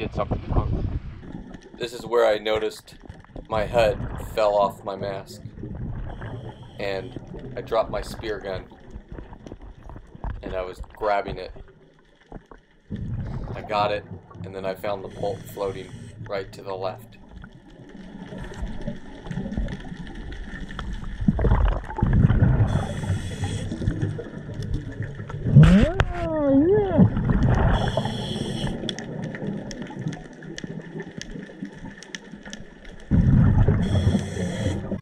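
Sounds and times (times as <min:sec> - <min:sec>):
rumbling exhaled bubbles: 0:00.0 - 0:35.0
regulator inhale hiss: 0:15.1 - 0:16.2, 0:22.7 - 0:23.8, 0:27.8 - 0:28.8, 0:33.8 - 0:35.0.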